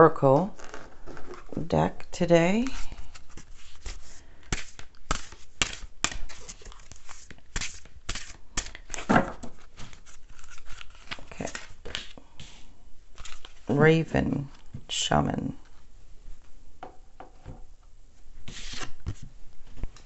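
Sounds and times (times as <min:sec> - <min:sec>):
cards being shuffled: 0:00.5 - 0:01.6, 0:02.6 - 0:13.8, 0:18.4 - 0:19.3.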